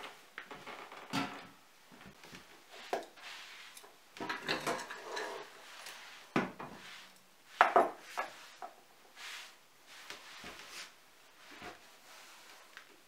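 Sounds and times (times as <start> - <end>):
dishes and utensils clattering: 4.2 - 5.6.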